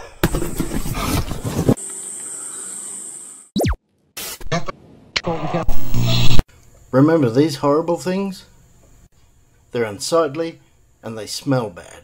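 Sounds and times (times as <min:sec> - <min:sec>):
glitchy clicks and tones: 0:03.6 - 0:03.8, 0:04.4 - 0:06.4
noise burst: 0:05.3 - 0:06.4.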